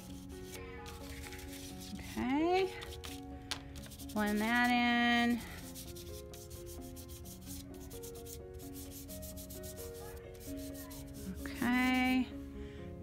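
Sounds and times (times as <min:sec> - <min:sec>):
chalk pastel rubbing on paper: 0:00.0 - 0:03.2, 0:03.8 - 0:12.3
soft background music: 0:00.0 - 0:13.0.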